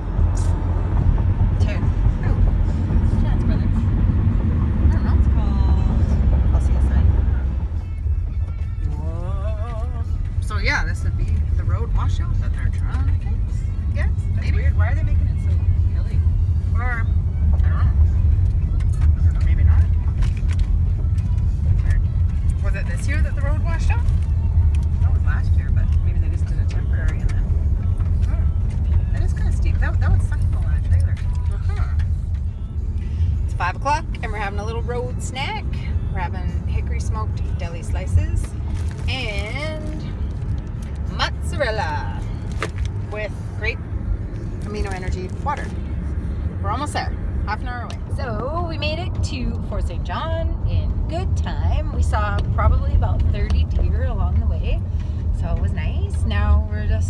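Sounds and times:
vehicle driving on gravel: 0.0s - 49.7s.

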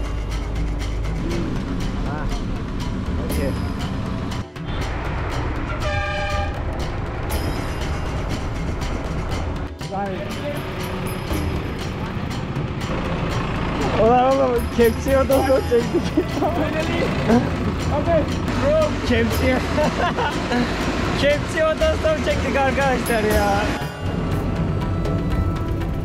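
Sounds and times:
vehicle engine and road rumble: 0.0s - 26.0s
vehicle horn: 5.7s - 6.7s.

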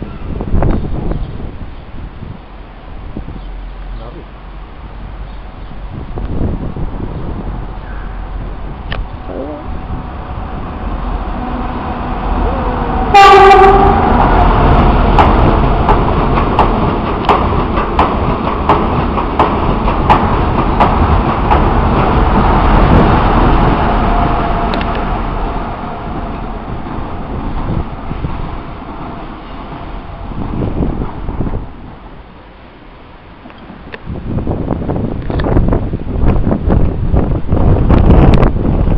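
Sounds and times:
train rumbling past: 0.0s - 38.9s
train horn blast: 11.1s - 14.6s
train wheels clicking on rail joints: 13.3s - 25.4s, 33.4s - 34.1s, 35.1s - 38.9s.

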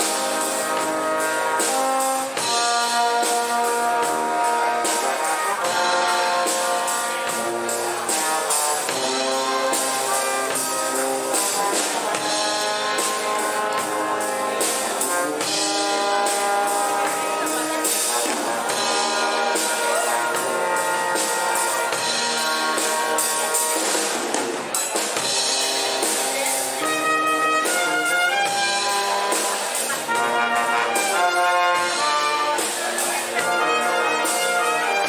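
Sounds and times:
brass band playing: 0.0s - 35.0s.

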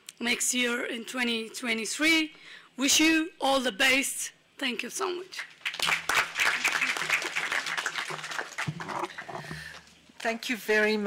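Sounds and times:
audience applauding: 5.6s - 9.4s.

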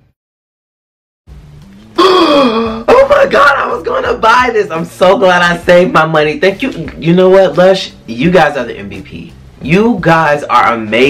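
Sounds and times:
man exclaiming ohh: 2.0s - 3.4s
man speaking: 2.8s - 11.0s.

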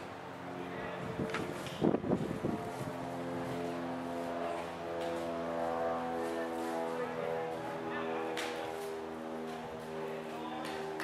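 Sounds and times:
engine drone: 0.0s - 11.0s.

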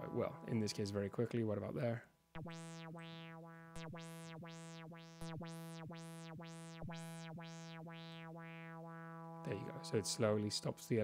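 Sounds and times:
modulated synthesizer note: 0.0s - 11.0s.

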